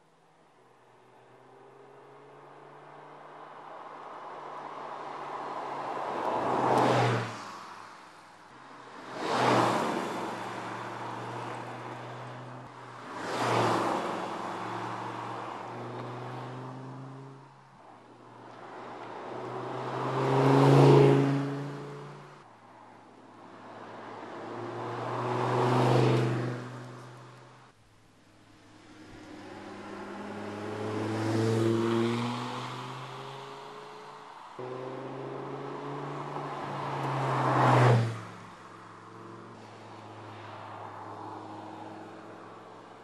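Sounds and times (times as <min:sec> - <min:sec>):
sports car engine driving past: 0:34.6 - 0:38.4.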